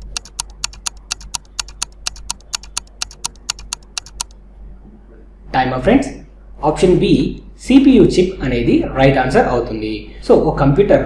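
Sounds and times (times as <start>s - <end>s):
timer ticking: 0.0s - 4.4s.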